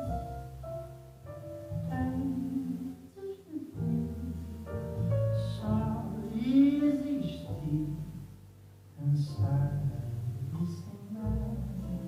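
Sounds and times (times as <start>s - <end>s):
piano chords: 0.0s - 12.0s
plucked double bass: 0.0s - 12.0s.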